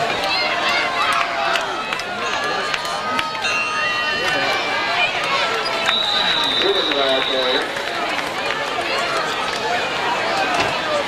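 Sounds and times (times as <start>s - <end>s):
spectators chattering and calling out: 0.0s - 11.0s
referee's whistle blowing: 5.6s - 7.7s.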